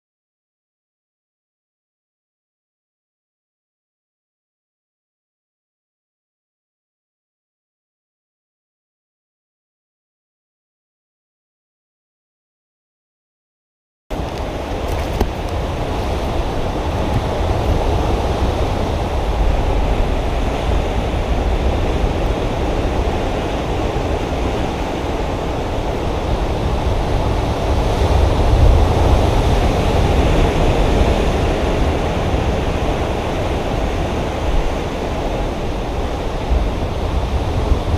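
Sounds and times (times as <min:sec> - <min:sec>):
surf rushing: 0:14.1 - 0:37.9
wind rumble on microphone: 0:14.1 - 0:37.9.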